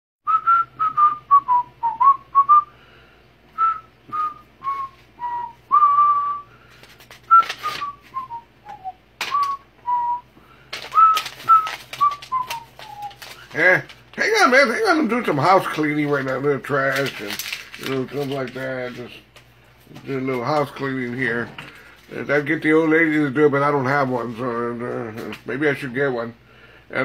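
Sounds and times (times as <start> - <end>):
man whistling a tune: 0.3 - 2.8, 3.6 - 6.5, 7.3 - 10.3, 10.9 - 13.5
rustles and clicks: 6.7 - 8.2, 10.7 - 14.2, 16.2 - 22.2.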